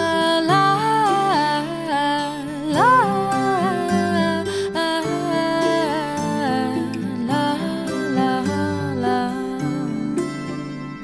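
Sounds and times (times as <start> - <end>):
woman humming a melody: 0.0 - 10.3
soft acoustic guitar: 0.0 - 11.0.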